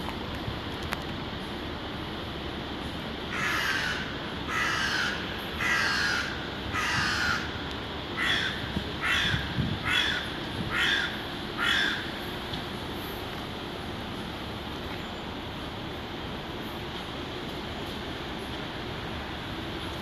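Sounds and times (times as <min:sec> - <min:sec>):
bird harsh calls: 0:03.3 - 0:07.6, 0:08.2 - 0:12.2.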